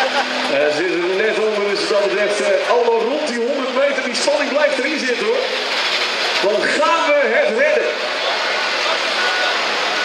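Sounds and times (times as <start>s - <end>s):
tractor engine rushing: 0.0s - 10.0s.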